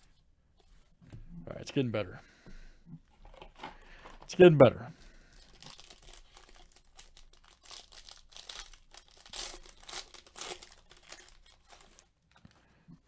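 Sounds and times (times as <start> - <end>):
foil wrapper crinkling and tearing: 5.1 - 12.6.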